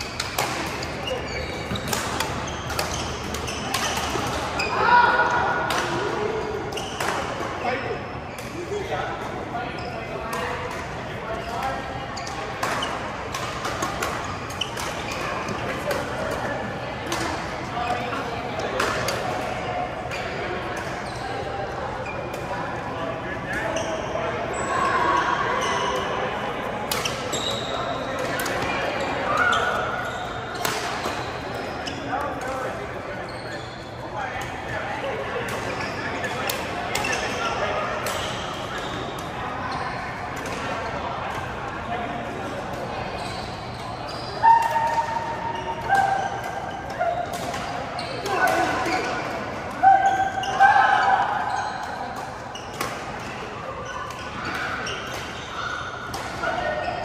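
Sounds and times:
players' voices echoing: 0.0 - 57.0.

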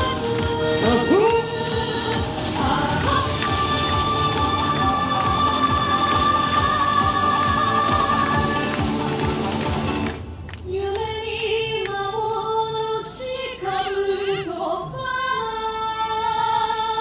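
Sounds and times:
dance music with long held note: 0.0 - 10.2.

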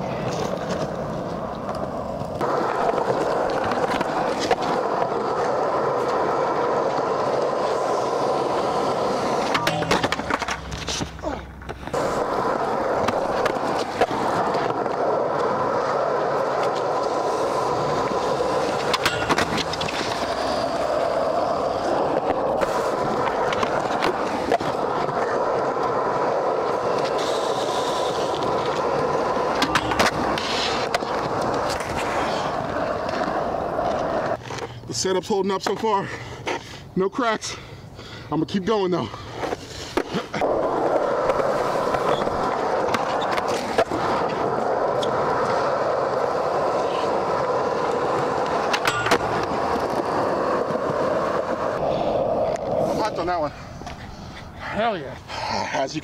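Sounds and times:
skateboard clacking on ground: 0.0 - 34.8, 39.4 - 54.5
skateboard wheels rolling on concrete: 0.0 - 56.0.

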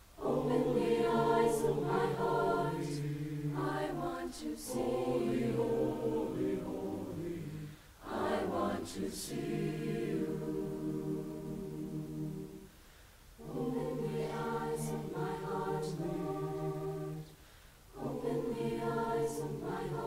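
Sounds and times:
choir singing sustained chords: 0.0 - 20.0.

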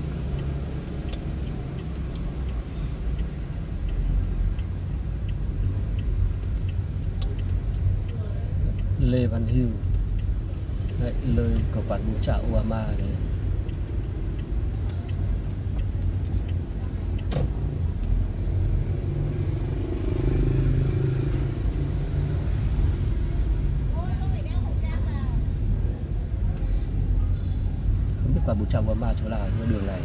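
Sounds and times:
car engine and tyres rumbling: 0.0 - 30.0
sharp click: 15.8 - 17.6.

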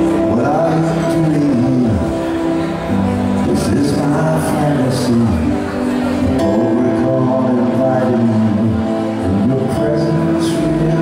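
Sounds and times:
keyboard playing held chords: 0.0 - 11.0.

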